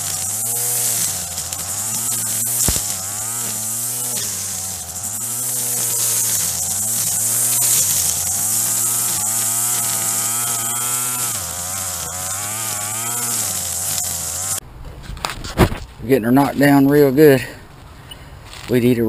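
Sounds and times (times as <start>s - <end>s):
high whir of spinning line: 0.0s - 14.6s
string trimmer motor revving: 0.0s - 14.6s.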